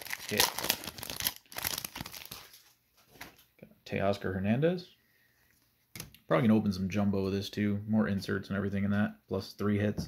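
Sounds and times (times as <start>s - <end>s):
card pack wrapper crinkling: 0.0s - 2.8s.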